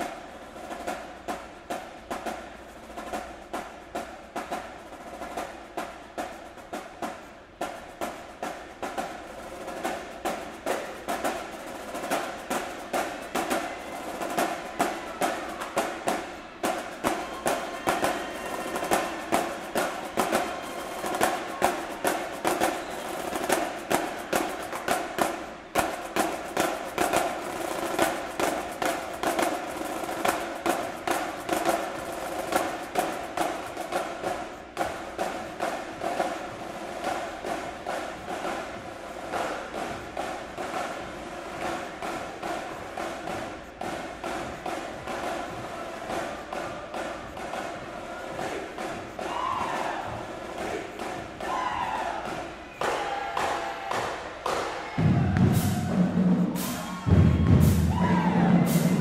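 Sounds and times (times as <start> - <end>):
marching drumline cadence: 0.0 - 59.0.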